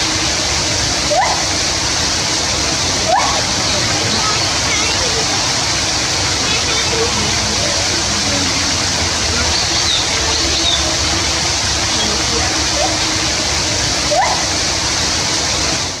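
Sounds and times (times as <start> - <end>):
steady rushing noise: 0.0 - 16.0
faint voices of people: 2.3 - 14.8.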